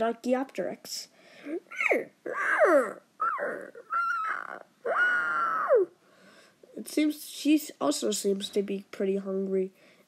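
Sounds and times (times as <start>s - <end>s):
person making squawk-like cries: 1.5s - 6.0s.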